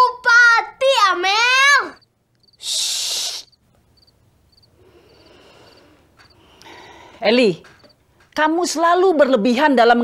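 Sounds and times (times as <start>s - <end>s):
person hushing: 2.6s - 3.5s.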